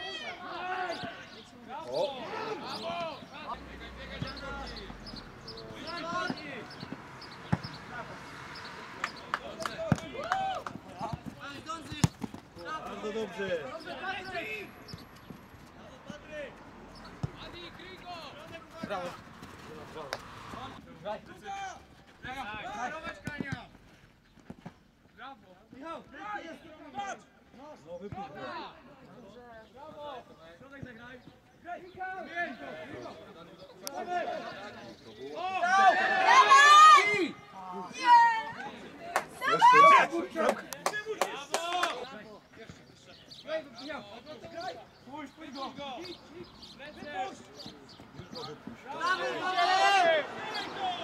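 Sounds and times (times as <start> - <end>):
players and coaches shouting: 0.0 - 15.0, 15.7 - 23.6, 25.7 - 42.3, 42.9 - 51.0
ball being kicked: 10.8 - 12.4.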